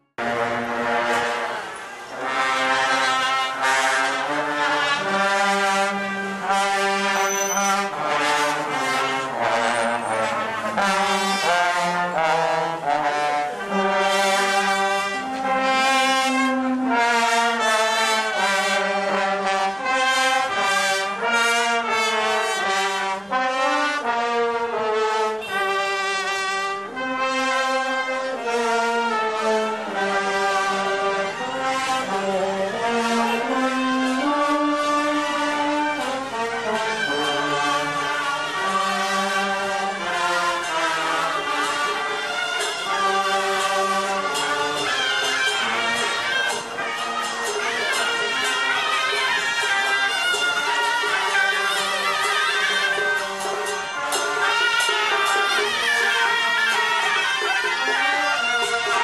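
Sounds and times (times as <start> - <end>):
brass band playing a melody: 0.0 - 59.0.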